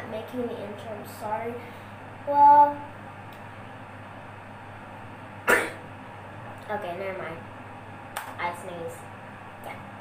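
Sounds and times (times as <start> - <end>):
girl sneezing: 5.5 - 5.8.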